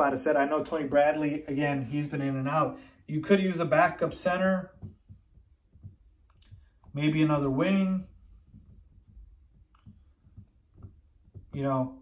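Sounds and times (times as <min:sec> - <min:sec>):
marker writing on whiteboard: 0:03.3 - 0:12.0.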